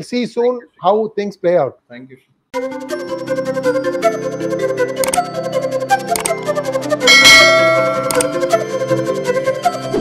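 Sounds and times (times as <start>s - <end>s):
electronic background music: 2.6s - 10.0s
bright bell chime: 7.1s - 8.3s.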